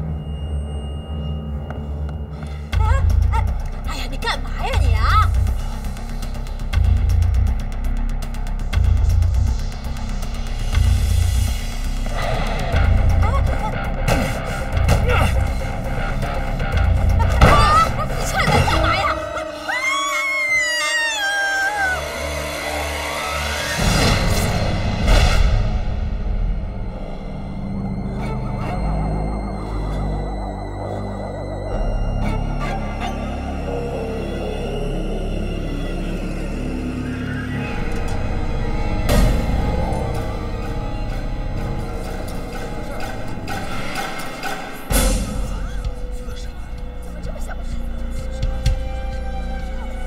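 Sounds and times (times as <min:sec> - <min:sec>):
tense drama score: 0:00.0 - 0:50.0
low drone: 0:05.3 - 0:50.0
woman screaming: 0:17.2 - 0:23.5.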